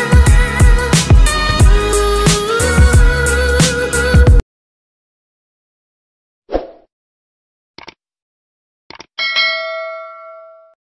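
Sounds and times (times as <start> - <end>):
bright bell chime ding: 9.2 - 10.8.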